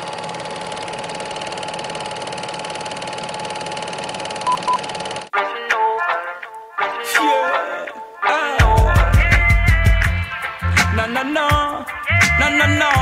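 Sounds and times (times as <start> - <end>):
short beeps: 4.5 - 4.8
reggae dancehall song with singing: 7.0 - 13.0.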